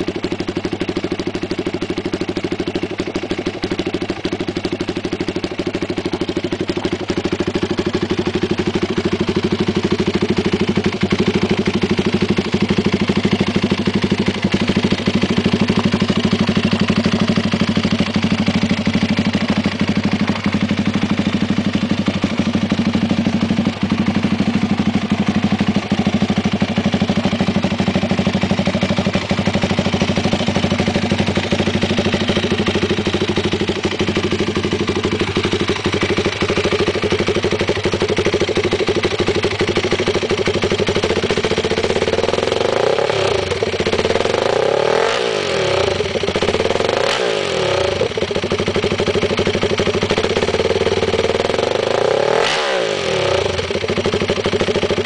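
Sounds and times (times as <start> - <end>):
engine idling and revving: 0.0 - 55.0.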